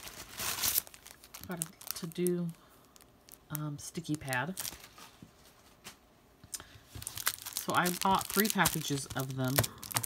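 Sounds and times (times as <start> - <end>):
plastic packaging crinkling: 0.0 - 5.6, 6.6 - 10.0.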